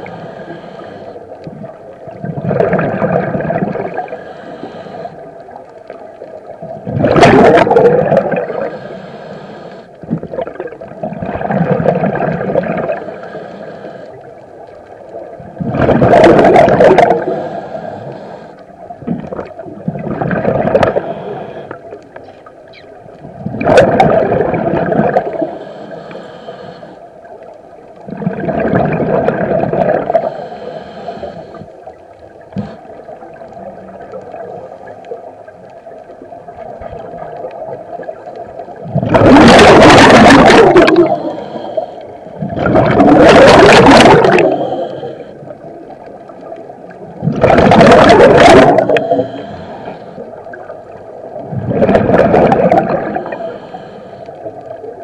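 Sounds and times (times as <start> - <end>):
faint steady hum: 0.0 - 55.0
gurgling exhaled bubbles underwater: 0.8 - 8.8, 10.0 - 13.4, 14.3 - 25.8, 27.2 - 55.0.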